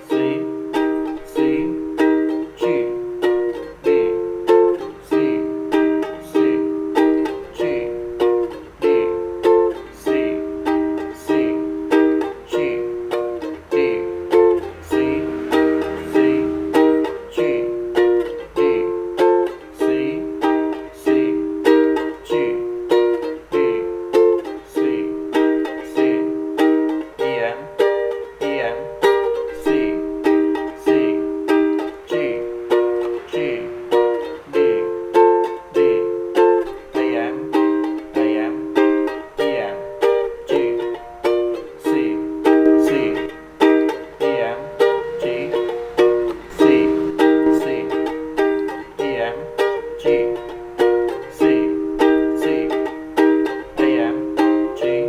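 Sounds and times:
ukulele strumming: 0.0 - 55.0.

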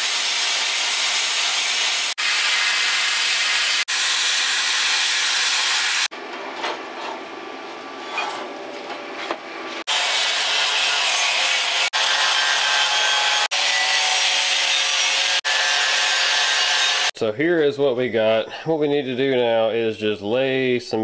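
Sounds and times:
power tool grinding steel tubing: 0.0 - 6.1, 9.8 - 17.1.

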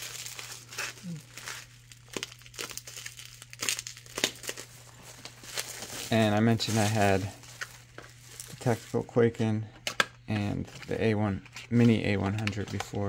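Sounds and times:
bubble wrap crinkling: 0.0 - 9.4
steady low hum: 0.0 - 13.0.

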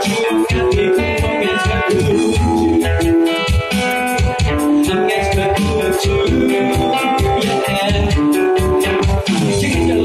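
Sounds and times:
electric bass guitar: 0.0 - 10.0
strummed acoustic guitars: 0.0 - 10.0.

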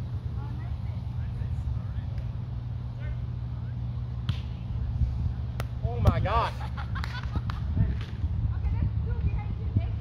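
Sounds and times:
steady low rumble: 0.0 - 10.0
volleyball being struck: 4.2 - 4.6.

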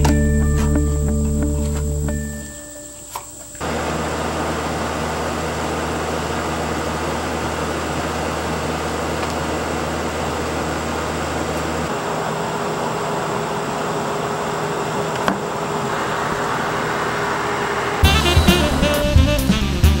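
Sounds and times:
steady machine hum: 10.0 - 20.0
even hiss: 15.6 - 20.0
higher steady tone: 15.7 - 20.0.

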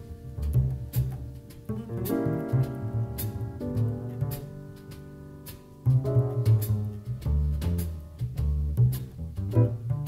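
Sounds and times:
piano chords: 0.0 - 8.5, 9.4 - 10.0
plucked double bass: 0.0 - 10.0.

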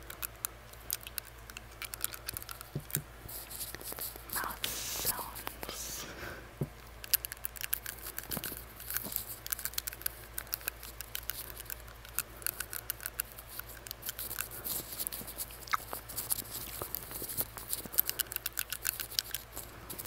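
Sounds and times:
tongue ring clicking against teeth: 0.0 - 3.1, 7.0 - 20.0
breathy whispery mouth sounds: 3.5 - 6.4.

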